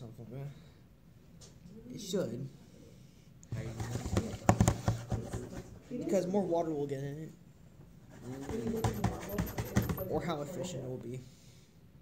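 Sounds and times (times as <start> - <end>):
bottle knocking on desk: 8.3 - 10.2.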